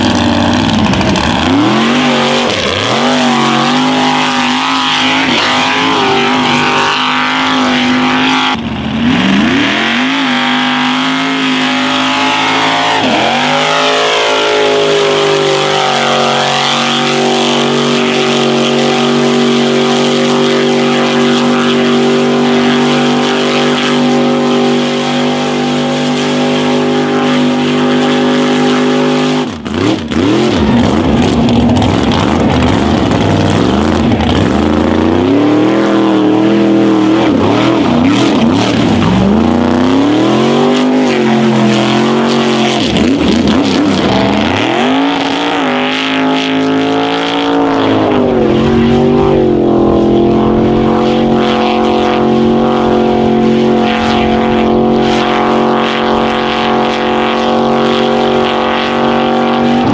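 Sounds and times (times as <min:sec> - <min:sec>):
truck engine revving: 0:00.0 - 0:59.9.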